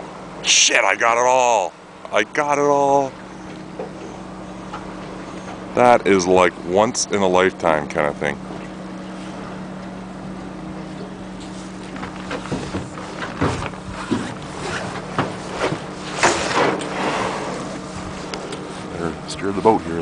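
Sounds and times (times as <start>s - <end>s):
boat motor idling: 0.0s - 20.0s.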